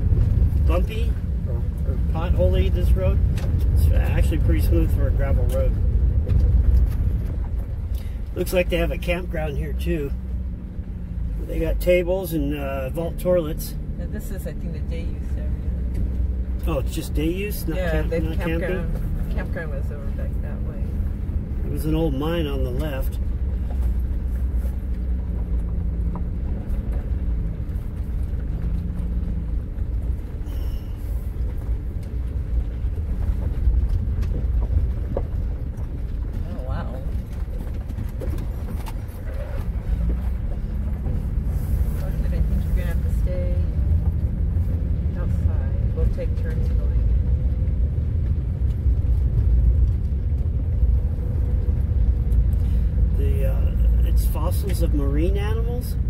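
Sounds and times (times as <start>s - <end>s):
tyres rumbling on gravel: 0.0s - 56.0s
vehicle engine rumble: 0.0s - 56.0s.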